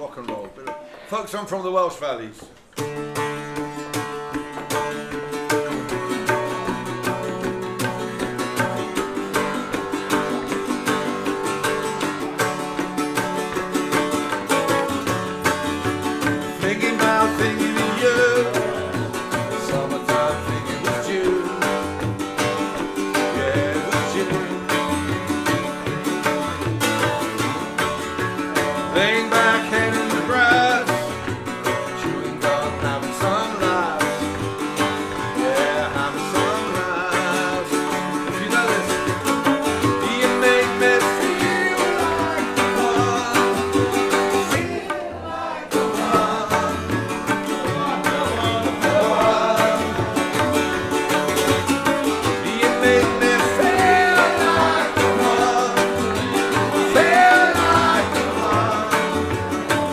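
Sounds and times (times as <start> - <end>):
tabla drums: 0.0 - 59.9
man singing: 16.2 - 25.7, 28.8 - 59.9.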